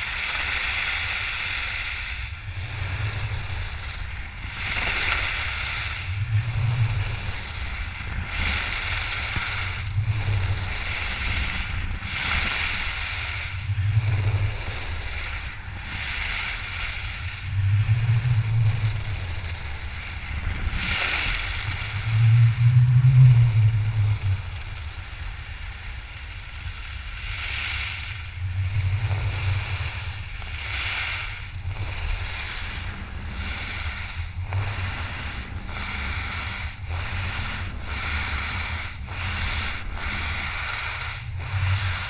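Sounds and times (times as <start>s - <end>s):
wind buffeting microphone: 2.5s - 42.0s
ski edges scraping snow: 3.0s - 25.2s, 28.8s - 42.0s.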